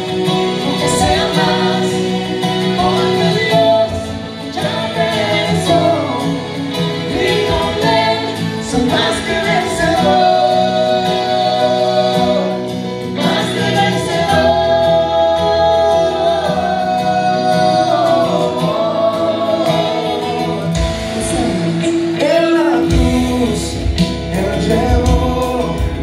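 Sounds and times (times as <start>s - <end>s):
instrumental backing: 0.0s - 26.0s
man and woman singing duet: 0.0s - 26.0s.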